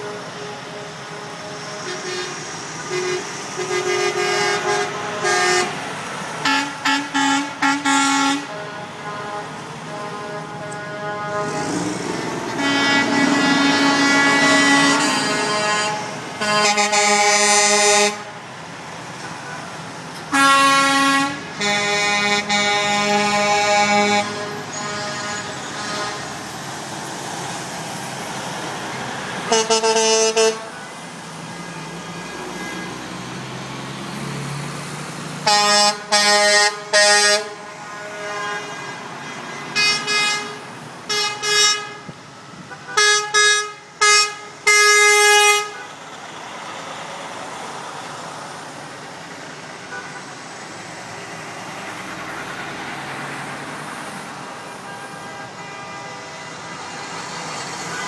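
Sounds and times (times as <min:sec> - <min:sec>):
truck air horns: 0:00.0 - 0:18.4, 0:19.2 - 0:26.6, 0:29.2 - 0:33.4, 0:35.4 - 0:46.1, 0:49.5 - 0:50.6, 0:53.4 - 0:58.0
truck engines running: 0:00.0 - 0:58.0.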